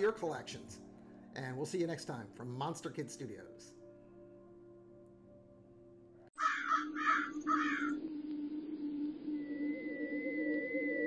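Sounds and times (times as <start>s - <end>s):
crow cawing: 6.4s - 8.0s.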